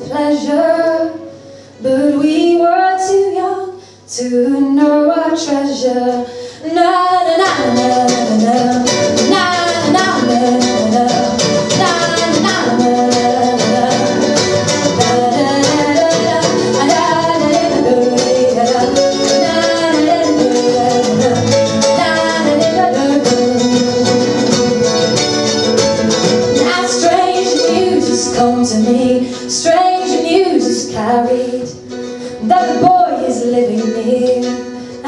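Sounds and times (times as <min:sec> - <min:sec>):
wordless na na singing: 0:01.8 - 0:35.0
strummed acoustic guitar: 0:04.8 - 0:35.0
folk band playing: 0:07.3 - 0:35.0.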